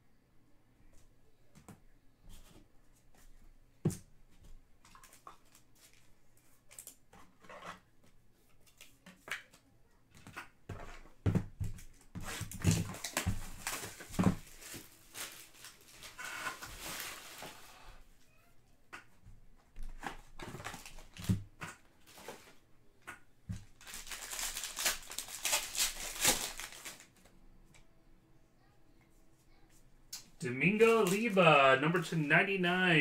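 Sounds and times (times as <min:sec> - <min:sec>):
plastic and cardboard crinkling: 0:04.8 - 0:09.6, 0:10.2 - 0:17.8, 0:19.8 - 0:22.6, 0:23.5 - 0:27.4, 0:30.6 - 0:31.8.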